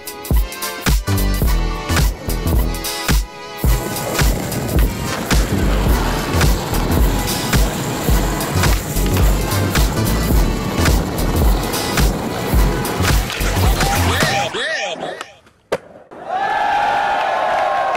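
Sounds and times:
music with steady beat: 0.0s - 14.4s
skateboard wheels rolling on concrete: 0.6s - 17.9s.

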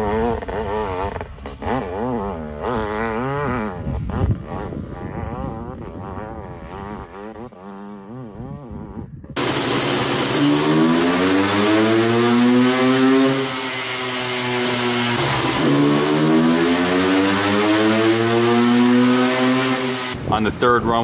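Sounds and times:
two-stroke engine revving: 0.0s - 21.0s.

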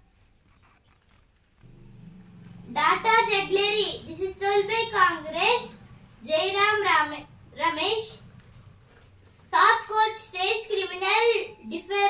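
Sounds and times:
low steady hum: 1.6s - 11.7s.

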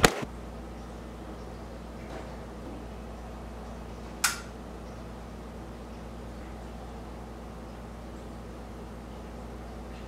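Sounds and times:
sharp click: 4.2s - 4.5s.

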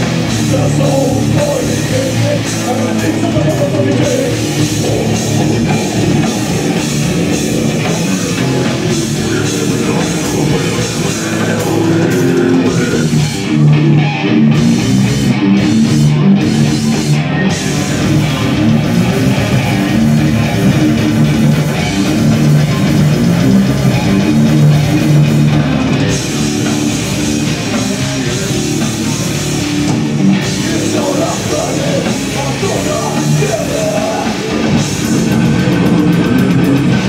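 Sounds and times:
bass riffs: 0.0s - 37.0s
distorted electric guitar: 0.0s - 37.0s
pounding drum kit: 0.0s - 37.0s.

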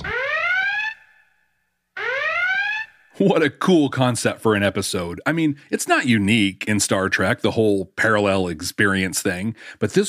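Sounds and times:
electronic alarm whoop: 0.0s - 1.2s.

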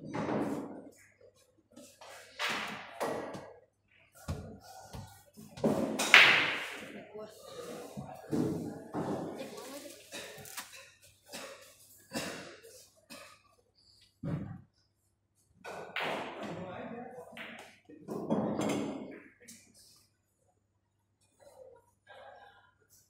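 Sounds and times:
pool balls knocking: 4.3s - 6.9s.

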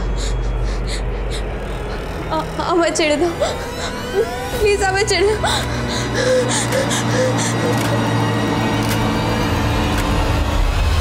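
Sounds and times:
woman sobbing: 0.0s - 8.7s
steady low hum: 0.0s - 11.0s.

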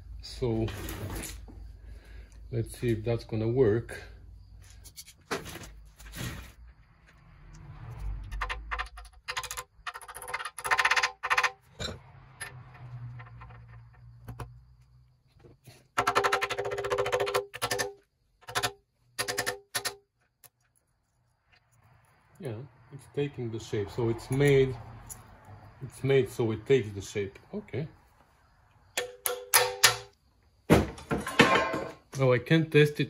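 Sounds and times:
metal scraping: 7.6s - 14.6s.

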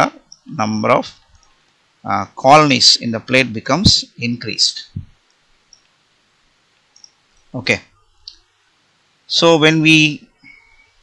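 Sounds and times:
man speaking: 0.0s - 1.2s, 2.0s - 5.0s, 7.5s - 7.9s.

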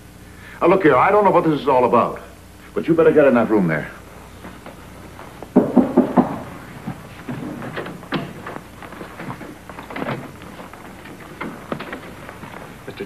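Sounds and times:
footsteps crossing a room: 4.0s - 13.0s
knocks on a door: 5.6s - 7.0s.

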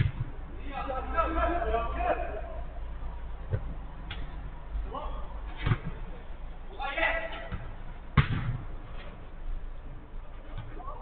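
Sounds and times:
football kicked thud: 0.0s - 0.4s, 7.5s - 8.7s.

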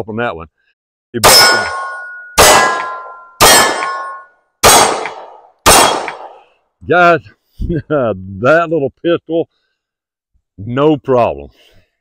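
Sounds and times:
pistol shots: 1.2s - 6.4s
steel targets ringing: 1.2s - 6.4s.

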